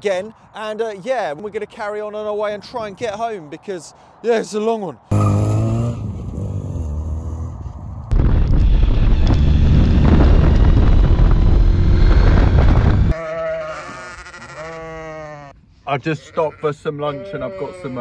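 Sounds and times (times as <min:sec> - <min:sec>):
road noise: 0:03.3 - 0:13.2
sheep bleating: 0:13.1 - 0:18.0.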